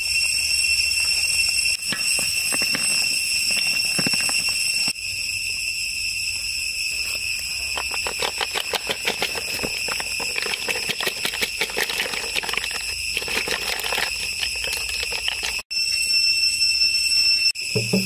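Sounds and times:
high-pitched insect drone: 0.0s - 18.0s
snail shells clattering: 7.6s - 15.6s.

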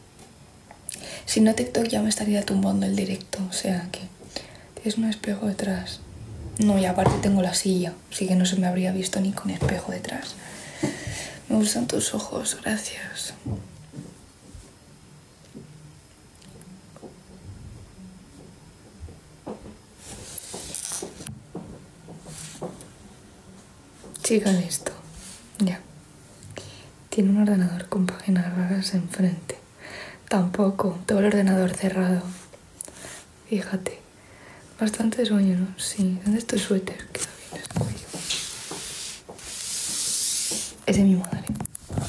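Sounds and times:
fabric rubbing on microphone: 5.2s - 7.8s, 20.0s - 21.3s, 37.2s - 41.2s, 41.8s - 42.0s.

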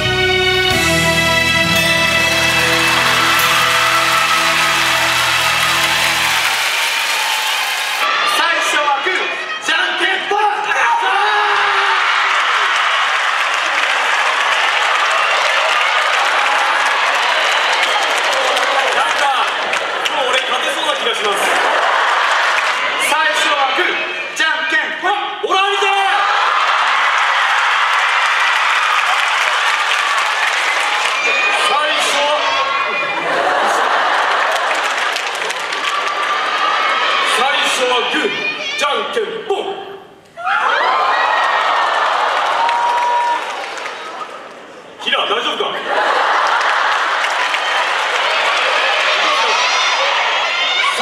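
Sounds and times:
audience applauding: 0.6s - 8.2s, 11.8s - 23.1s, 26.2s - 37.3s, 40.8s - 45.0s, 45.9s - 51.0s.

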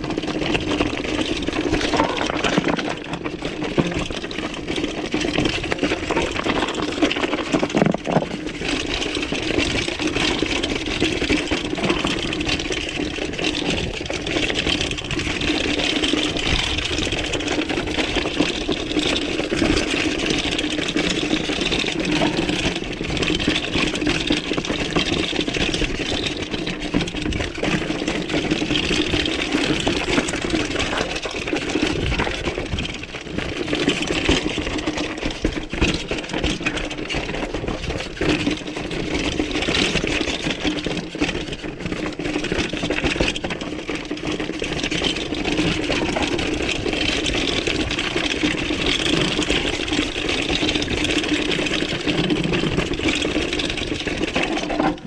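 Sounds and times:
bike rattling over rocks: 0.0s - 55.0s.

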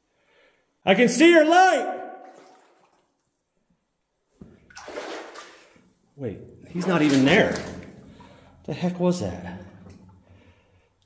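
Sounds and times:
water splashing and sloshing: 2.2s - 3.6s, 4.4s - 10.9s.

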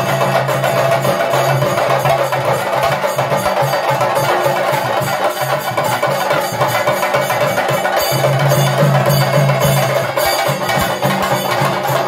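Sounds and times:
drums in fast continuous roll: 0.0s - 12.0s.

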